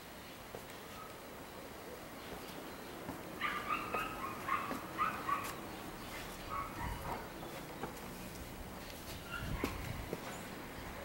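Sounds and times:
dog barking: 0:03.4 - 0:05.6, 0:06.5 - 0:07.3, 0:09.3 - 0:09.8.

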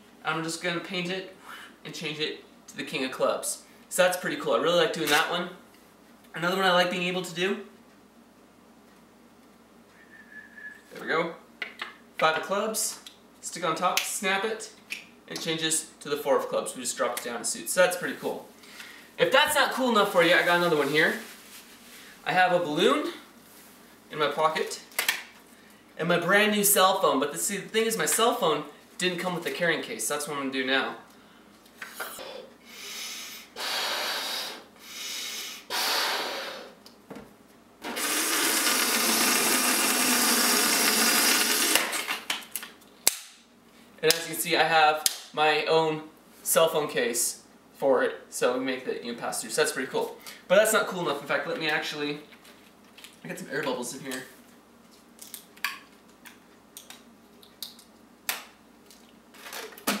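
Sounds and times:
air hissing out of balloon: 0:32.1 - 0:36.8
balloon blown up by mouth: 0:35.7 - 0:36.8.

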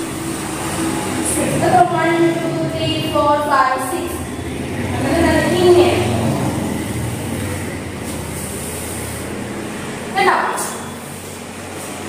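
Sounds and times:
low hum: 0:00.0 - 0:10.2.

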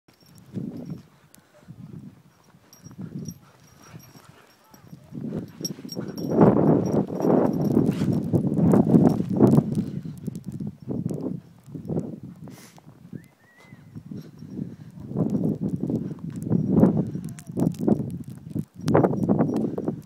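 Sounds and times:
paws running in snow: 0:00.1 - 0:20.0.

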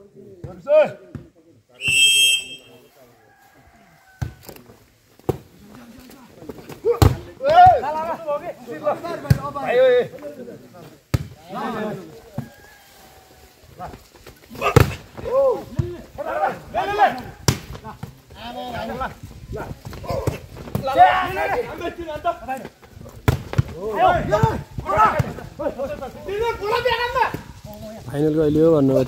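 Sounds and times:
voices calling out: 0:01.8 - 0:28.1
hands smacking volleyball: 0:14.2 - 0:15.9, 0:17.4 - 0:18.2, 0:23.2 - 0:23.8.

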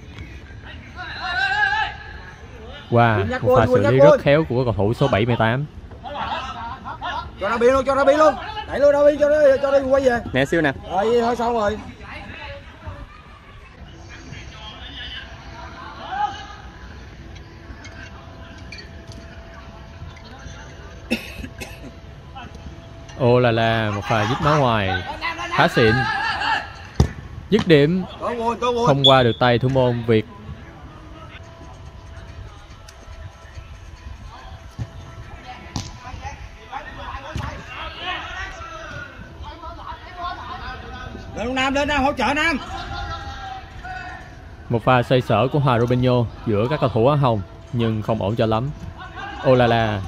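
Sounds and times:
football kick thuds: 0:27.0 - 0:27.7, 0:35.7 - 0:36.0.

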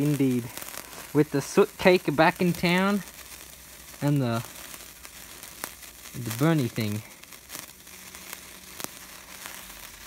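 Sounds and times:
sparkler fizzing crackle: 0:00.0 - 0:10.0.

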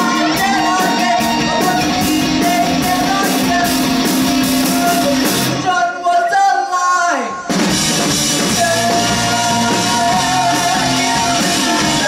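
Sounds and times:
rock band playing: 0:00.0 - 0:05.8, 0:07.4 - 0:12.0.

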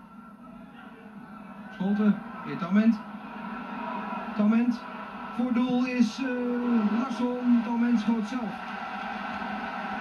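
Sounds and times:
stadium crowd noise: 0:00.0 - 0:10.0
commentator speaking: 0:05.4 - 0:08.6.

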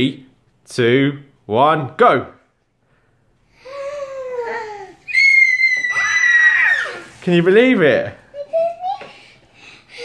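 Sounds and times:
girls squealing with delight: 0:05.0 - 0:07.1.

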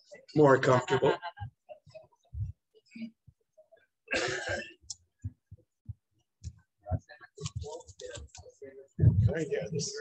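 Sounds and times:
person coughing: 0:04.1 - 0:04.9.

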